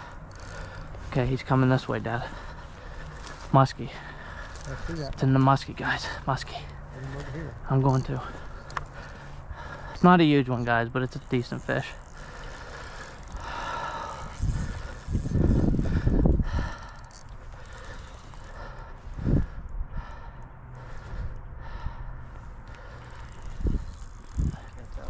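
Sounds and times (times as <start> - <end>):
fishing reel being wound: 0.0 - 5.5, 7.9 - 18.8, 22.8 - 25.0.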